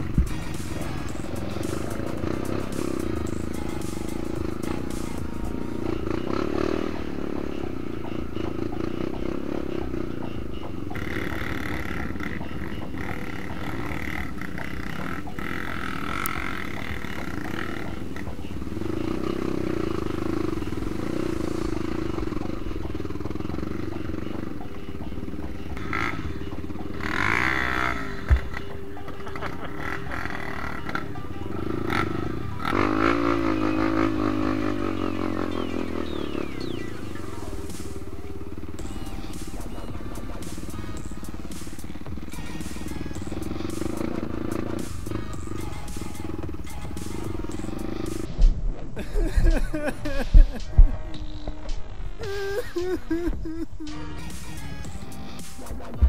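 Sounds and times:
background music: 0.0 - 56.0
motorcycle engine revving: 0.0 - 56.0.

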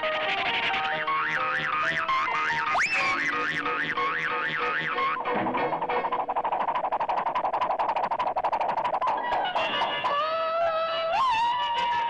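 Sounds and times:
cartoon music: 0.1 - 6.2
fast percussive taps: 1.2 - 10.2.

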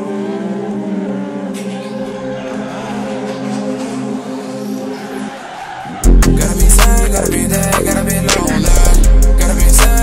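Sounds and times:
sparse hip-hop music: 0.0 - 10.0.

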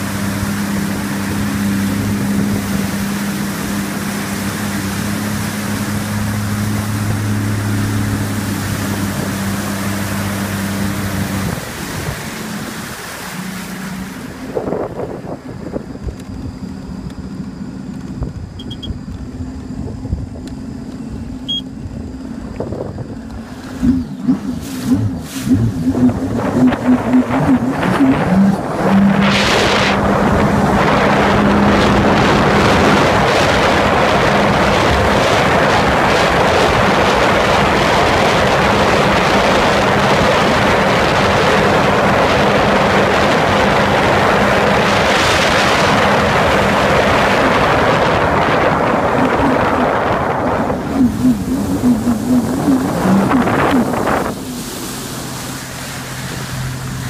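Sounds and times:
jet ski engine: 0.0 - 57.0
rush of water and wind: 0.0 - 57.0.

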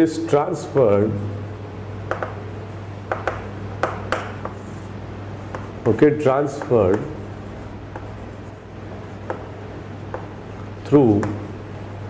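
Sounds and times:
chalk scratching on chalkboard: 2.1 - 11.6.

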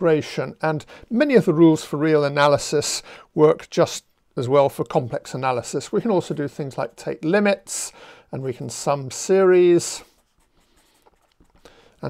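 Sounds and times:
marker writing on paper: 10.0 - 11.8.

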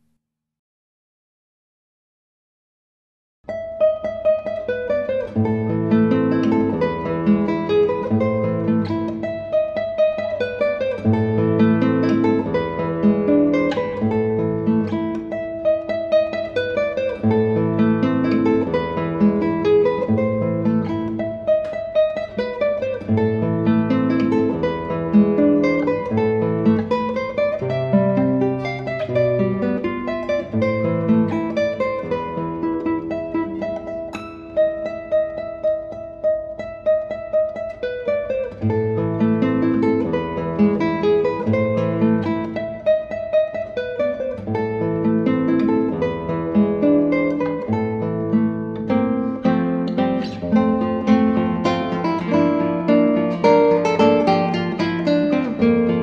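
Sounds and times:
classical guitar fingerstyle: 3.5 - 56.0.

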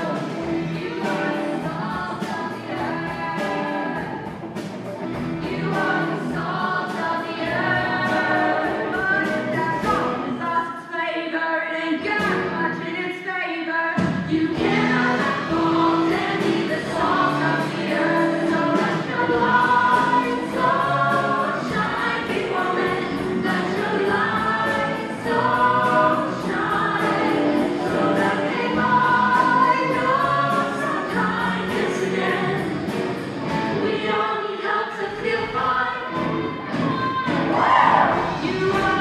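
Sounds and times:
girls singing together: 5.4 - 11.1, 14.2 - 32.8, 33.8 - 39.0
musical accompaniment with steady beat: 14.0 - 34.0.

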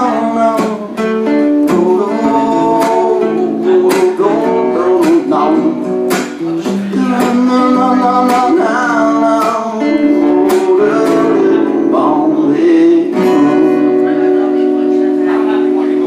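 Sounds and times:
acoustic guitar strummed: 0.0 - 16.0
man singing: 0.0 - 16.0.

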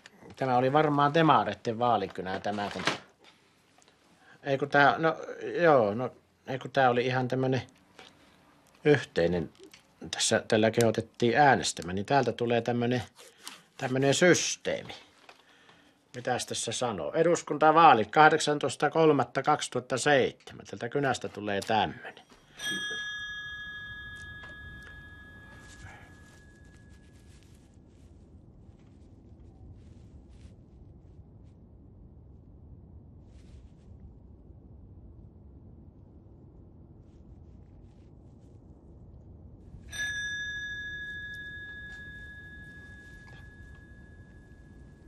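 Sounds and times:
bell-like ding: 22.5 - 27.1, 39.9 - 45.0.

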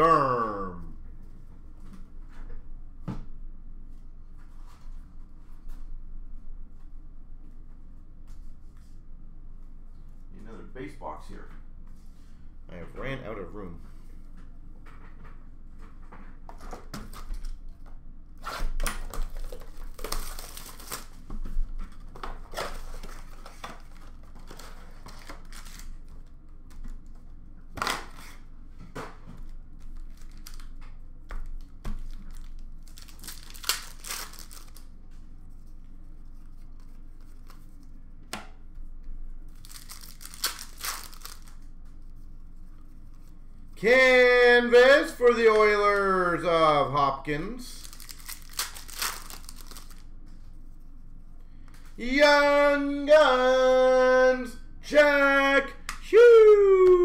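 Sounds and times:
foil packs tearing and crinkling: 19.0 - 21.2, 22.4 - 26.0, 30.0 - 30.7, 32.0 - 34.9, 39.6 - 41.6, 47.8 - 50.0.

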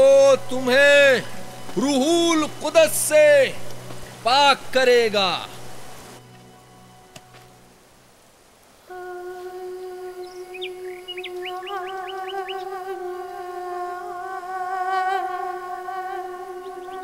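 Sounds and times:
held wind instrument note: 8.9 - 17.0
bird chirping: 9.7 - 12.9, 16.5 - 17.0.

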